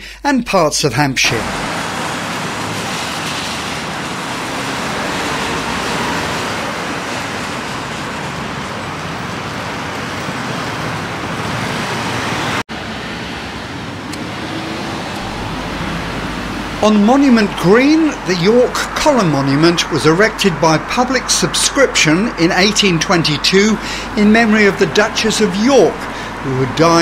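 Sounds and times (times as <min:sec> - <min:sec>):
road traffic passing: 0:01.2 - 0:27.0.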